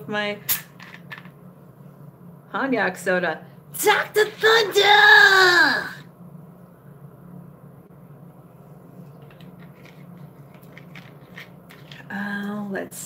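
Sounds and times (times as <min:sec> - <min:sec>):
woman's drawn-out exclamation: 0:04.0 - 0:06.0.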